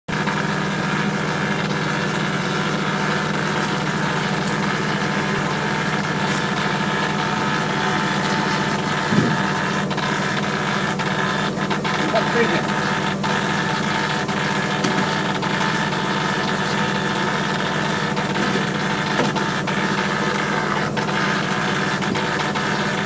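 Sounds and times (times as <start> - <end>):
engine idling: 0.1 - 23.0.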